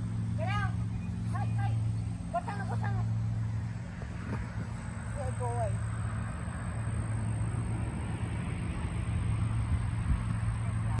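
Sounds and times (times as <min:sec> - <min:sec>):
engine drone with low hum: 0:00.0 - 0:11.0.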